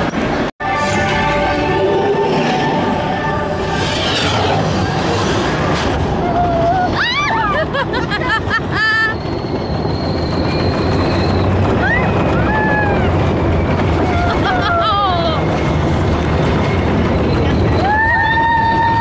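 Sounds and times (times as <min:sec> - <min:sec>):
ride vehicle rumble: 0:00.0 - 0:19.0
riders whooping: 0:10.7 - 0:13.3, 0:13.9 - 0:15.5, 0:17.7 - 0:19.0.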